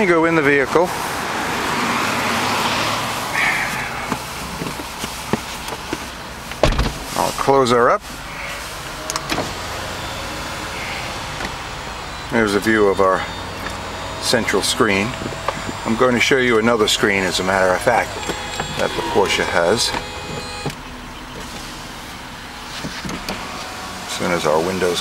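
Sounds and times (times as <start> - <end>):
electric roof mechanism humming: 0.9 - 25.0
soft top motor whirring: 8.7 - 25.0.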